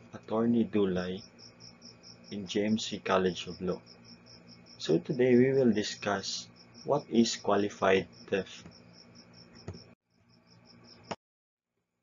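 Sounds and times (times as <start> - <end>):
cricket chirping: 0.0 - 11.2.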